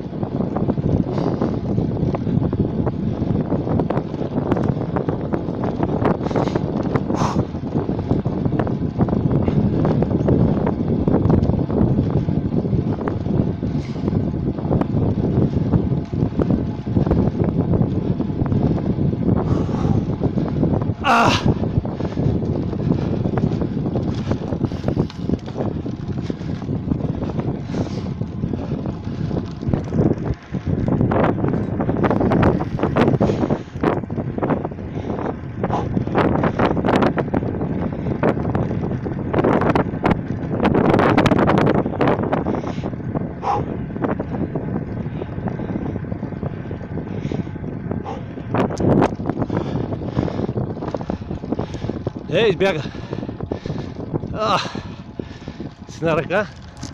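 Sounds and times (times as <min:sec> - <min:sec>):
low rumble of riding: 0:00.0 - 0:56.9
wind on microphone: 0:00.0 - 0:56.9.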